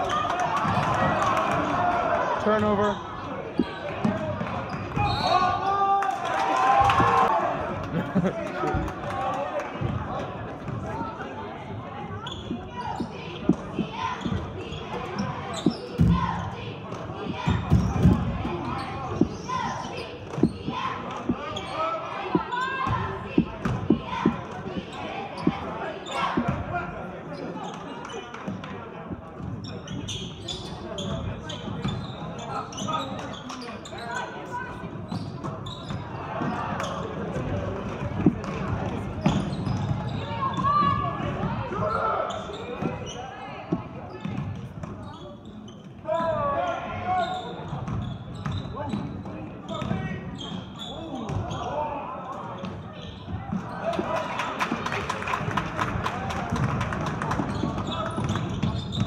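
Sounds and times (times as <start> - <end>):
voices echoing in gym: 0.0 - 59.0
basketball bouncing on hardwood: 22.3 - 25.6.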